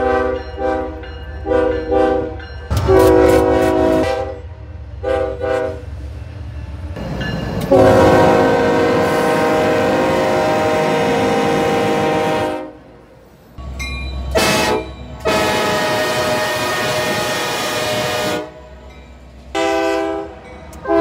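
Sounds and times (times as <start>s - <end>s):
locomotive air horns: 0.0s - 4.4s, 5.0s - 5.9s, 7.7s - 12.9s, 14.3s - 18.7s, 19.5s - 21.0s.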